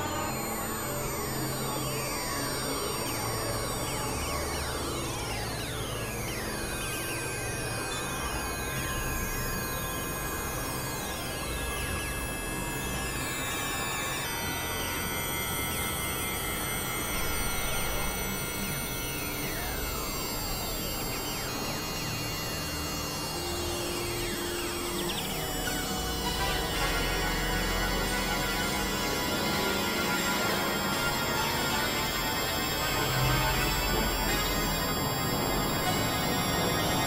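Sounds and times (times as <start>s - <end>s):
synthesizer drone music: 0.0s - 37.0s.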